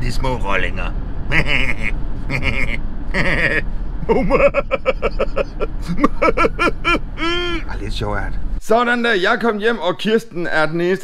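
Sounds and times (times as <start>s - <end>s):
minibus cabin rumble: 0.0s - 8.6s
man laughing: 1.3s - 7.7s.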